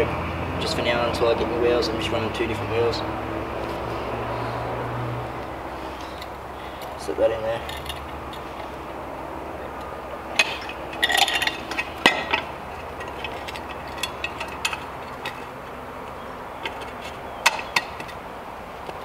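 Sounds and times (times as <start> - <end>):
light metal clicks and clinks: 9.8 - 18.2.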